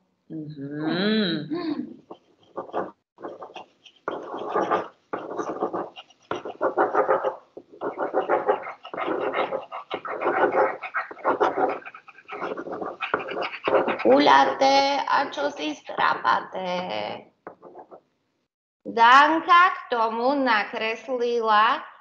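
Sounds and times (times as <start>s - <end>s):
pencil scribbling on paper: 2.0s - 16.2s, 17.5s - 18.0s.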